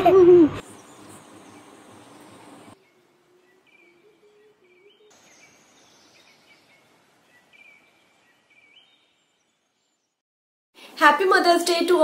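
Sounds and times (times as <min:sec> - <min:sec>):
light background hiss: 0:00.5 - 0:09.3
faint high bird chirps: 0:00.6 - 0:10.2.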